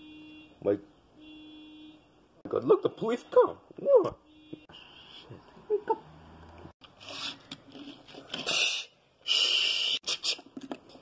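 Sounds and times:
breathy mouth hissing: 8.4s - 10.5s.

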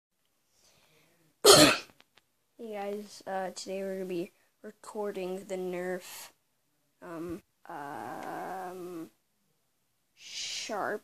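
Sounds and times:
loud cough: 1.5s - 1.9s.

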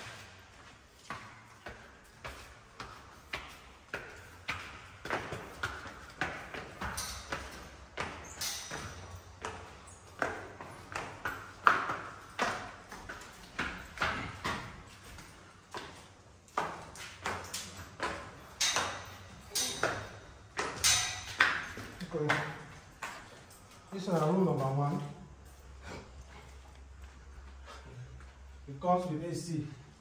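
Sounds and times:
footsteps echoing on stone stairs: 0.0s - 28.8s.

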